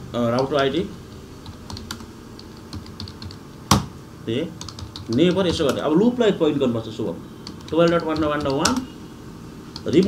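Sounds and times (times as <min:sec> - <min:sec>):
keyboard typing: 0:00.2 - 0:03.9, 0:04.6 - 0:05.9, 0:07.4 - 0:08.9, 0:09.7 - 0:10.0.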